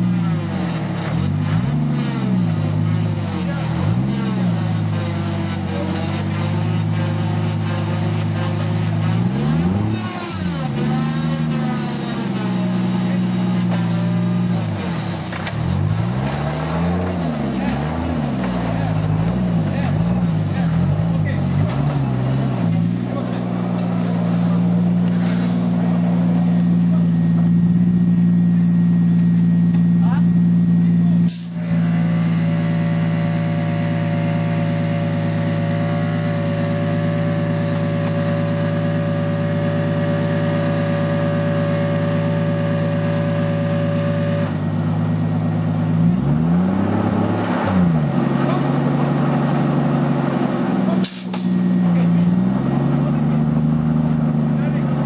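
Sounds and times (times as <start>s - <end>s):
off-road engine revving: 0.0s - 55.0s.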